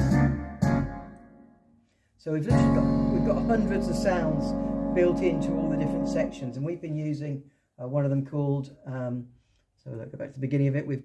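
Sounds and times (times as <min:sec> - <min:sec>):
keyboard playing backing style: 0:00.0 - 0:01.7, 0:02.4 - 0:06.8.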